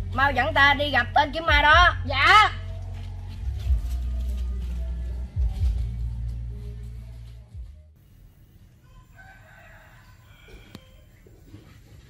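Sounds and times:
faint rooster crowing: 8.7s - 11.8s.

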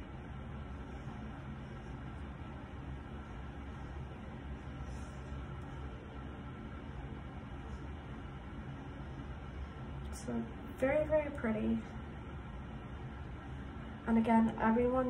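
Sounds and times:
low hum with hiss: 0.0s - 15.0s.

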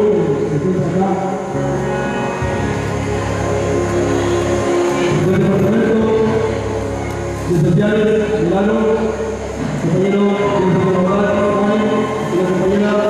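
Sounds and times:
music with long held notes: 0.0s - 13.0s
slow gliding melody: 0.0s - 13.0s.

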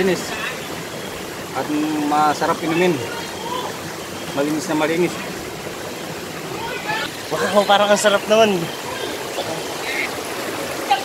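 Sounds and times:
spring water trickling into pool: 0.0s - 11.0s.

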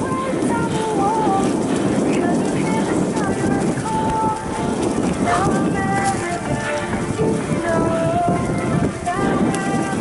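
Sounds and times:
bike rattle: 0.0s - 10.0s
bike tyre noise: 0.0s - 10.0s
music: 0.0s - 10.0s
wind on microphone: 0.0s - 10.0s.

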